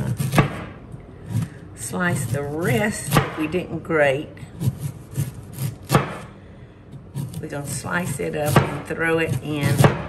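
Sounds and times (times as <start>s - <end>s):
knife slicing cabbage on board: 0.0s - 0.7s, 1.3s - 3.4s, 4.6s - 6.3s, 7.1s - 10.0s.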